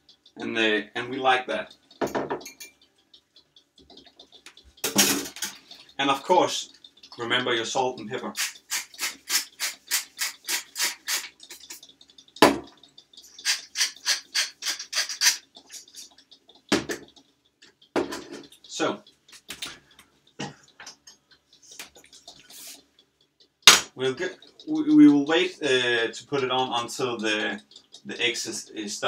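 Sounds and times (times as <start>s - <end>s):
frying pan set on stovetop: 4.1s - 16.0s.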